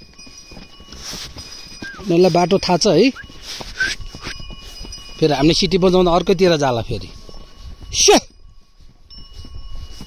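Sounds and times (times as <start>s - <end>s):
horse hoofbeats on stones: 0.0s - 10.0s.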